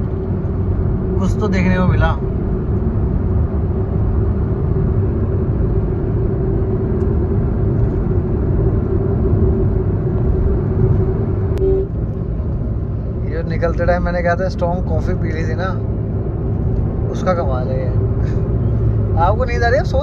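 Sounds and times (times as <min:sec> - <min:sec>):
car cabin road and engine noise: 0:00.0 - 0:20.0.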